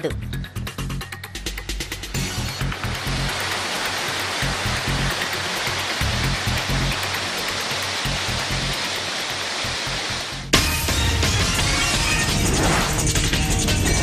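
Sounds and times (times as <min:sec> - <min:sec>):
background music: 0:00.0 - 0:14.0
river water rushing through rapids: 0:02.7 - 0:10.4.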